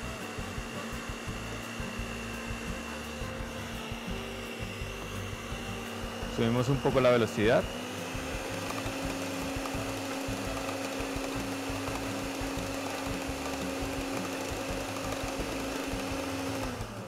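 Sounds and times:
stand mixer motor whine: 0.0 - 17.0
beaters whipping in steel bowl: 0.6 - 17.0.

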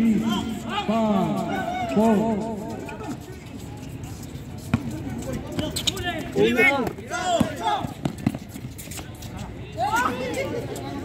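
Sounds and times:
running feet on hard court: 1.9 - 10.5.

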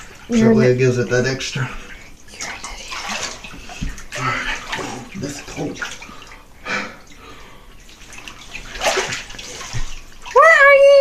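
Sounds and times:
water sloshing in bathtub: 0.0 - 11.0.

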